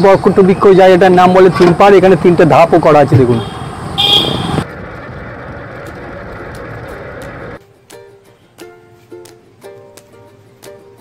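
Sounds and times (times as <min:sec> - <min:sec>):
outdoor background noise: 0:00.0 - 0:11.0
plucked-string music: 0:05.8 - 0:11.0.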